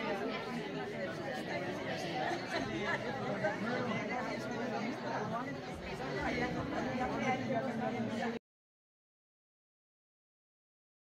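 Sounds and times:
crowd of people talking: 0:00.0 - 0:08.4.

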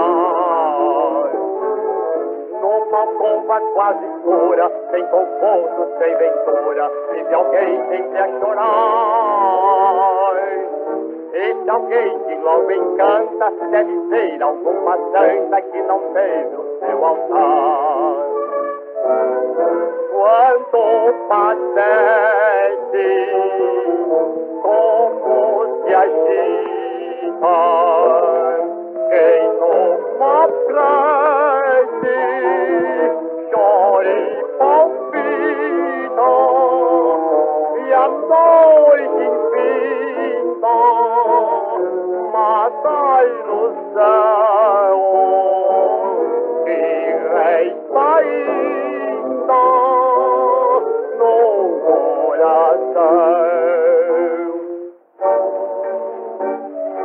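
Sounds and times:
old jazz band record: 0:00.0 - 0:57.0.

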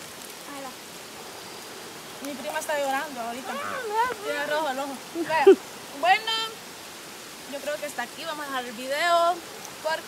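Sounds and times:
flowing river water: 0:00.0 - 0:10.0
faint voice: 0:03.4 - 0:04.3.

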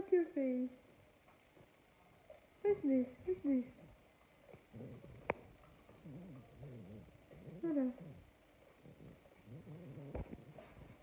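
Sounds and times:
dog grumbling: 0:04.5 - 0:11.0
dog whining: 0:04.7 - 0:08.2, 0:08.8 - 0:11.0.

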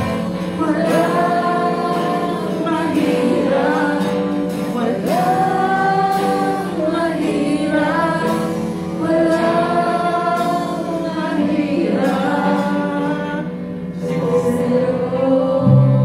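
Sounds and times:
guitars playing: 0:00.0 - 0:16.0
person singing into a microphone: 0:00.0 - 0:16.0.

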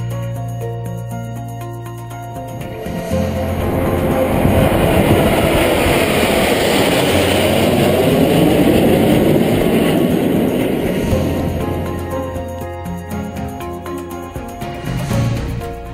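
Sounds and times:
music: 0:00.0 - 0:15.9
aircraft roaring overhead: 0:02.4 - 0:15.7.

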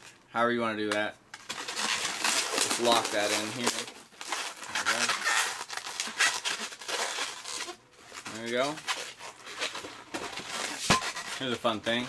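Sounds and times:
balloon squeaking and rubbing: 0:01.4 - 0:12.0.

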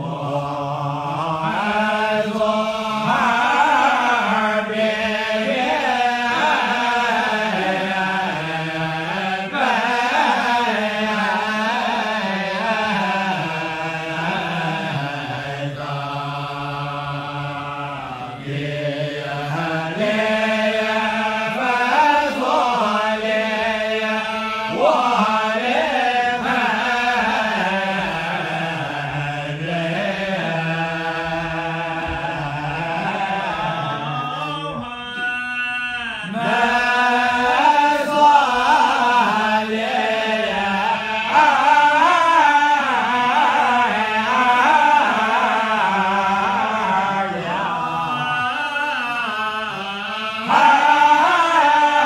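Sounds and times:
man chanting in long melodic notes: 0:00.0 - 0:52.0.

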